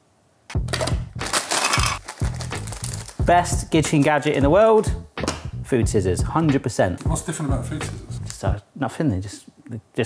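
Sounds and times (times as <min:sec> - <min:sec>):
plastic packet crinkling: 0:00.7 - 0:03.2.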